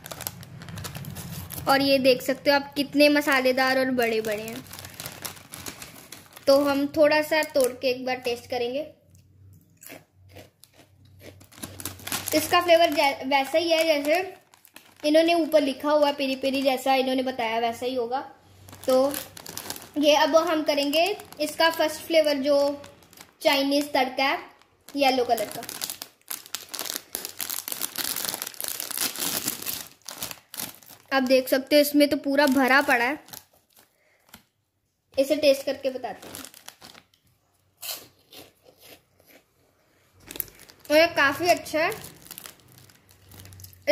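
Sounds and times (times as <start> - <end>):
snack packet crinkling and tearing: 0.0 - 8.5, 9.1 - 17.8, 18.5 - 34.6, 35.2 - 39.4, 40.2 - 43.9
faint crunches of chips eaten: 9.1 - 12.6, 36.2 - 40.9, 42.0 - 43.9.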